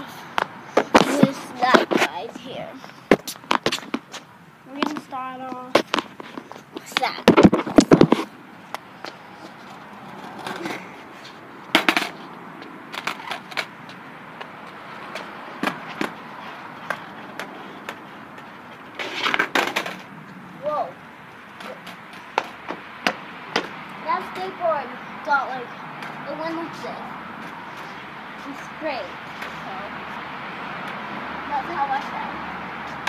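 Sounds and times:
skateboard wheels rumbling: 0.0s - 33.0s
skateboard clacking on ground: 0.4s - 2.5s, 3.1s - 10.9s, 11.7s - 12.2s, 12.9s - 16.2s, 16.8s - 20.1s, 21.5s - 24.5s.

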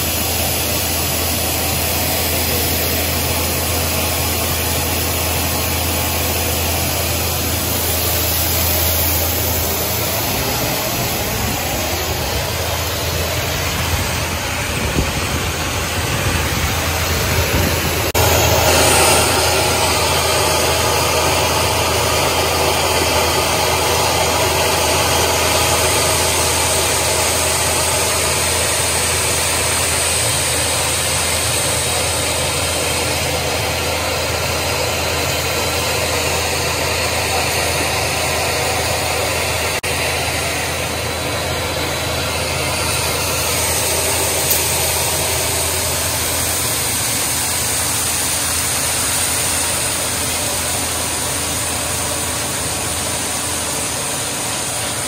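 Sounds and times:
engine hum: 0.0s - 55.0s.

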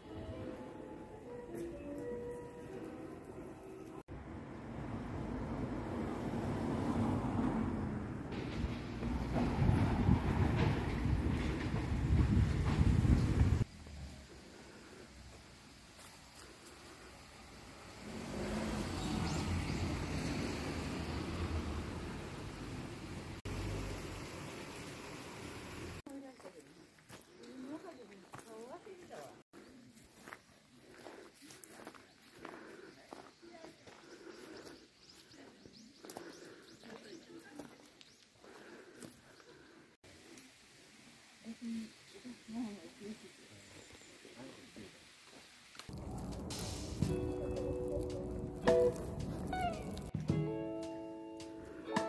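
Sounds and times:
train rumbling past: 4.2s - 15.9s, 16.7s - 26.0s, 45.9s - 50.2s
footsteps on stone steps: 26.1s - 39.6s.

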